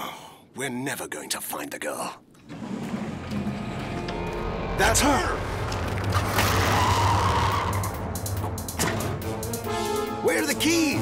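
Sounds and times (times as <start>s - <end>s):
background music: 2.5s - 11.0s
car tires skidding: 4.2s - 8.0s.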